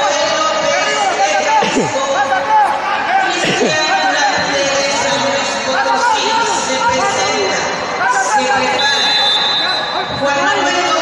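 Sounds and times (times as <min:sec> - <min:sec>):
spectators shouting and talking: 0:00.0 - 0:11.0
high whistle blast: 0:08.8 - 0:10.2.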